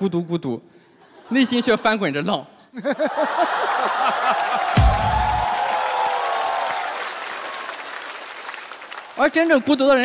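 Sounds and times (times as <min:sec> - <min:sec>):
studio audience applauding: 0:03.3 - 0:10.0.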